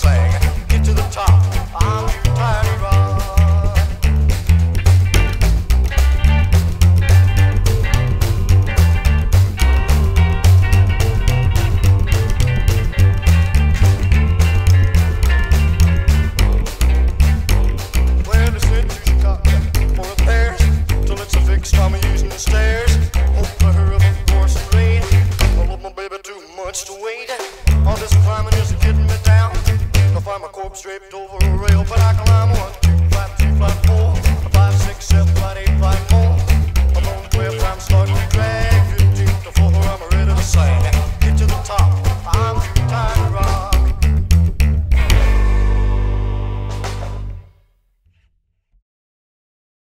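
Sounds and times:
slap upright bass: 0.0s - 25.8s, 27.6s - 30.4s, 31.4s - 47.6s
lead guitar line: 0.0s - 25.9s, 27.6s - 30.3s, 31.4s - 47.6s.

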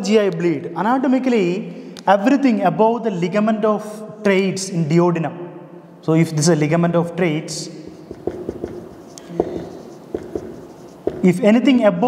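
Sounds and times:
marker writing on whiteboard: 7.9s - 11.5s.

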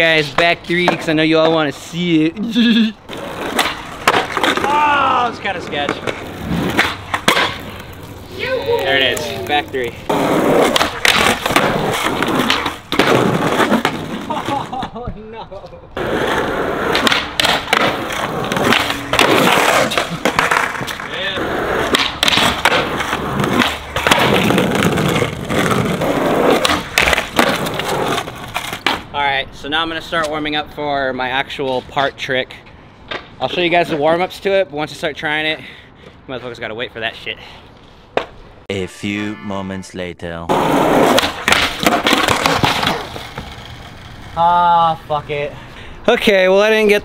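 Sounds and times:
skateboard wheels rolling on concrete: 0.0s - 38.6s, 40.5s - 47.0s
skateboard landing clack: 3.4s - 4.7s, 5.8s - 7.8s, 10.6s - 14.3s, 16.9s - 21.1s, 21.9s - 25.6s, 26.5s - 29.0s, 41.0s - 43.6s
skateboard tail pop: 6.1s - 7.6s, 16.9s - 20.9s, 41.1s - 43.5s.

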